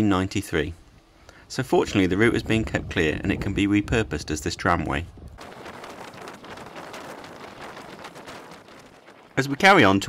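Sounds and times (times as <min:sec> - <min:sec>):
scattered crackles: 0:04.2 - 0:10.0.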